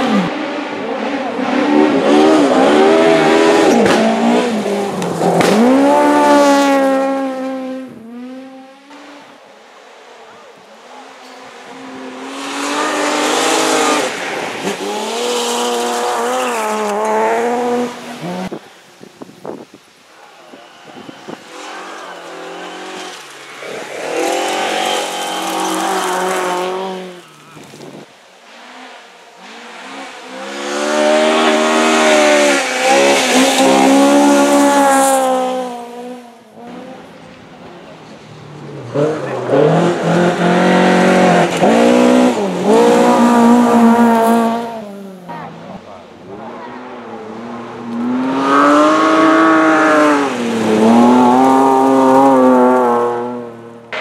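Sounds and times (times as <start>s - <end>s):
rally cars passing: 0.0s - 54.0s.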